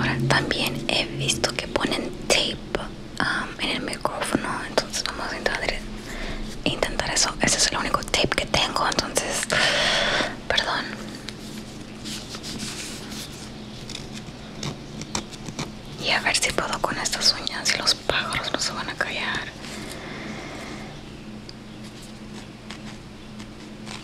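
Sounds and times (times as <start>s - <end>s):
person whispering into microphone: 16.0s - 19.6s.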